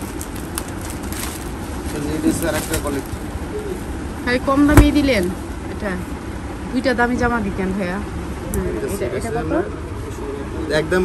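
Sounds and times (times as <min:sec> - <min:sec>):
low background rumble: 0:00.0 - 0:11.0
people talking: 0:01.9 - 0:06.1, 0:06.7 - 0:11.0.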